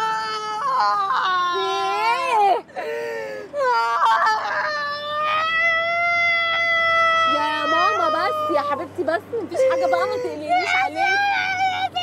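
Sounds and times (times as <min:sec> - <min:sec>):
woman wailing while crying: 0:00.0 - 0:12.0.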